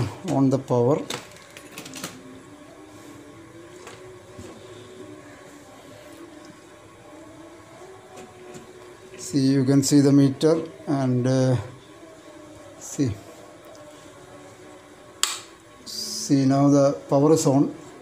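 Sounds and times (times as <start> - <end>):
faint steady hum: 0.0 - 18.0.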